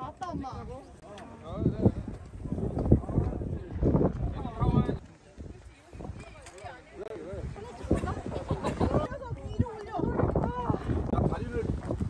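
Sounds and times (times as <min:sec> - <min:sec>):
people talking: 0:00.0 - 0:11.7.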